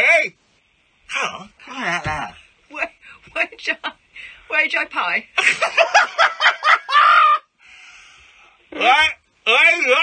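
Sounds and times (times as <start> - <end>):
man laughing cry: 5.6 - 7.4
breathy exhale: 7.6 - 8.6
man speaking garbled words: 8.7 - 10.0.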